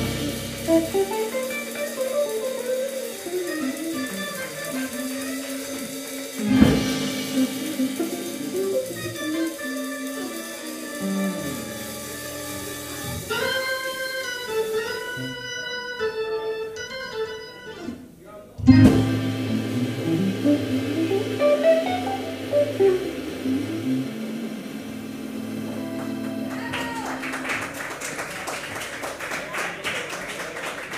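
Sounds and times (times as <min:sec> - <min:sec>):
organ chords and runs: 0:00.0 - 0:02.0, 0:04.1 - 0:14.5, 0:18.7 - 0:27.4
loud full-band hit: 0:00.0 - 0:02.2, 0:03.3 - 0:13.5, 0:18.7 - 0:27.0
organ guitar and drums band: 0:00.0 - 0:18.0, 0:18.6 - 0:27.7
audience applause: 0:25.6 - 0:30.9.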